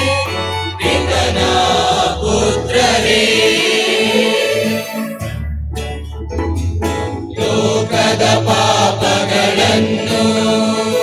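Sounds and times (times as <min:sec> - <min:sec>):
choir singing a hymn: 0:00.0 - 0:05.2, 0:07.4 - 0:11.0.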